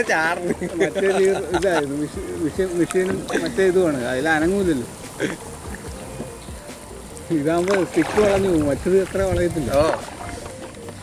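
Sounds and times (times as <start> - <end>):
boat moving on water: 0.0 - 11.0.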